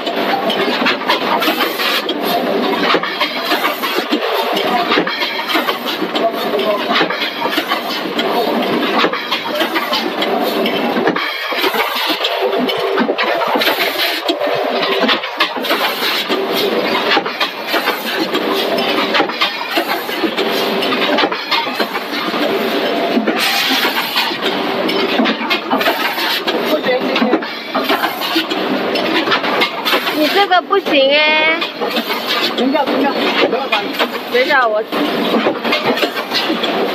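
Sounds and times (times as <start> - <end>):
packing machine clattering: 0.0 - 36.9
steady machine hum: 0.0 - 36.9.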